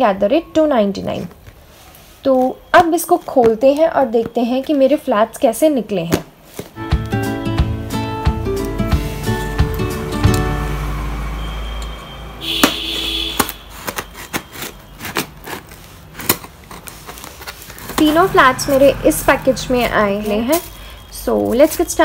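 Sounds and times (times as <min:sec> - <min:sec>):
instrumental background music: 0:06.8 - 0:13.0
box cutter slicing packing tape: 0:12.6 - 0:18.3.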